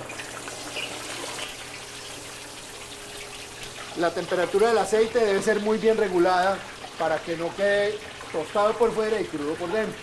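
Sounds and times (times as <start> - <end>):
fish deep-frying in oil: 0.0 - 10.0.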